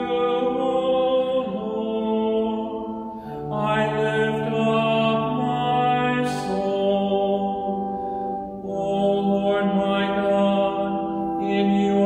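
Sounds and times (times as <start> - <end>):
man singing a chant: 0.0 - 7.8, 8.6 - 12.0
singer breathing: 3.0 - 3.5, 7.8 - 8.6.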